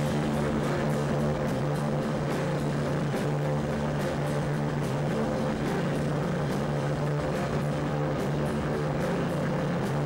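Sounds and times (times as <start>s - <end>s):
distorted guitar and bass drone: 0.0s - 10.0s.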